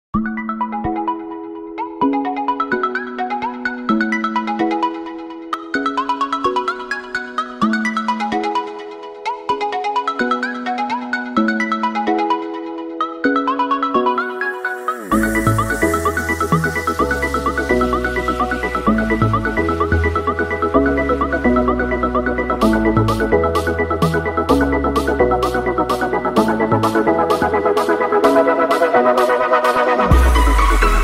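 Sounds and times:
bright chiming melody over chords: 13.5 - 26.4.

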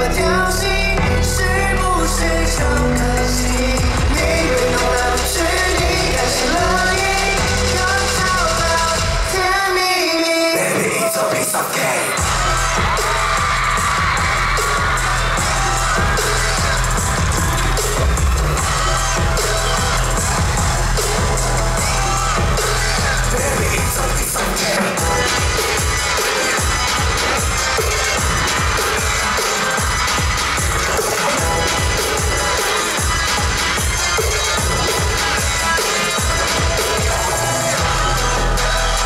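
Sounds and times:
pop dance track with heavy bass: 0.0 - 39.0.

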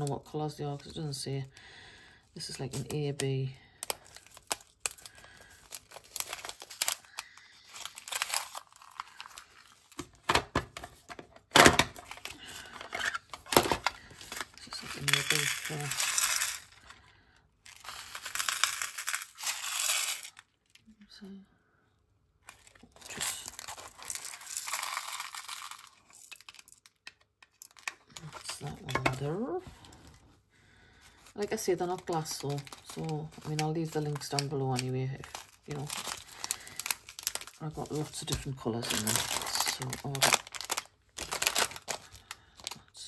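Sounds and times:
plastic packet crinkling: 2.3 - 20.8, 22.4 - 30.0, 31.0 - 42.9
plastic gems rattling into bag: 2.6 - 9.9, 12.0 - 17.0, 17.7 - 20.5, 22.6 - 29.2, 31.9 - 42.3.

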